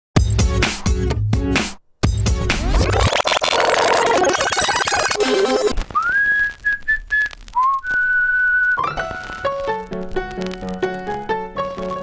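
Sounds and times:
person whistling a tune: 6.0s - 9.0s.

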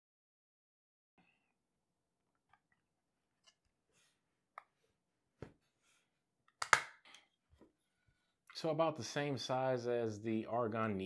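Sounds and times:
plastic parts snapping together: 6.6s - 7.2s.

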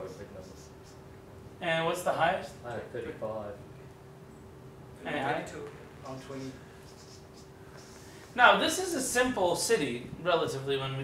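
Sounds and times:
marker pen writing on paper: 0.0s - 1.0s, 6.2s - 8.4s.

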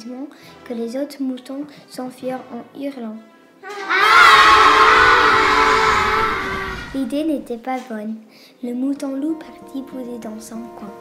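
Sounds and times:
children screaming: 3.6s - 7.0s.

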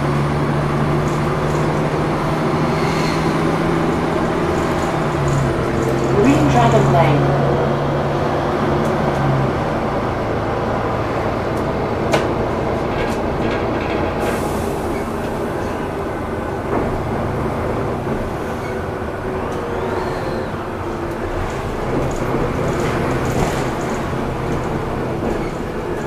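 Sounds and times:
bus engine and road noise: 0.0s - 26.0s.

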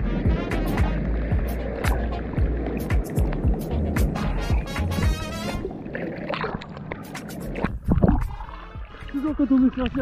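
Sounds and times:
loud water splash: 0.0s - 10.0s
sea water sloshing and splashing: 0.2s - 10.0s.

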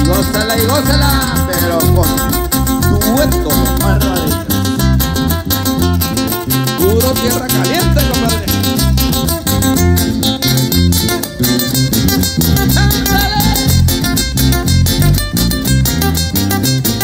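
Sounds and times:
live band with guitars and bass: 0.0s - 17.0s.

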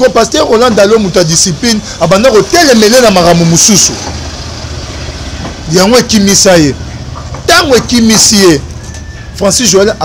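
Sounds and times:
man speaking: 0.0s - 4.2s, 5.7s - 6.8s, 7.4s - 8.7s, 9.4s - 10.0s
low engine rumble: 0.0s - 10.0s.

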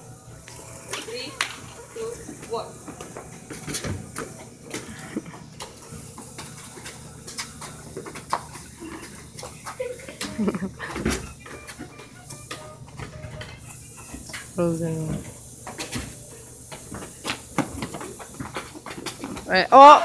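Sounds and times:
sneakers scuffing on concrete: 0.9s - 14.6s, 15.2s - 19.6s
ball kicked on concrete: 2.4s - 11.2s, 15.1s - 19.6s
person shouting: 19.7s - 20.0s.

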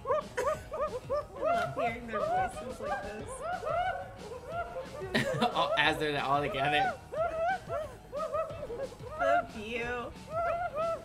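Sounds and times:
high-pitched yelping calls: 0.0s - 11.0s.

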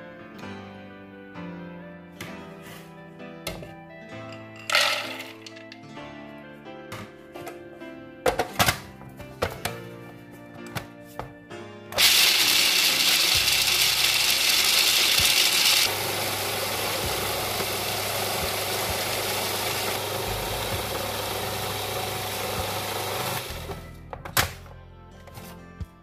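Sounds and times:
food processor grinding: 12.0s - 23.8s.

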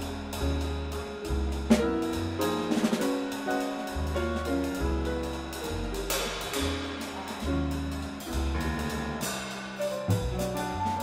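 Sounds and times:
drum kit and cymbals: 0.0s - 11.0s
grand piano: 0.0s - 11.0s
upright bass notes: 0.0s - 11.0s.

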